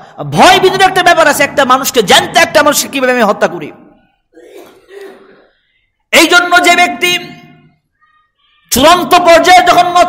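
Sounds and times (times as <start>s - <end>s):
man clearing his throat: 4.3s - 5.6s.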